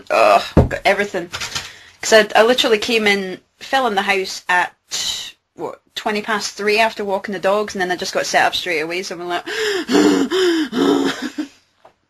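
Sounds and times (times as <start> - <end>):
person laughing: 9.9 - 11.5.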